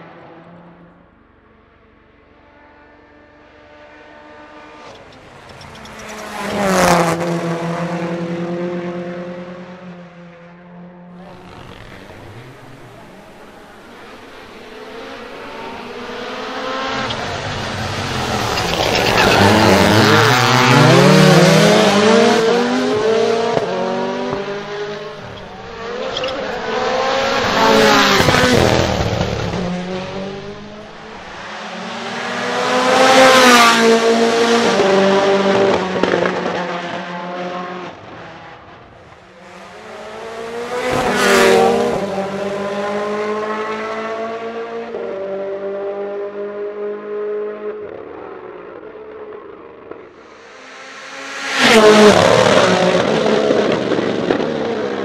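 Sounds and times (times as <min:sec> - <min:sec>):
rally cars passing at full speed: 0:00.0 - 0:55.0.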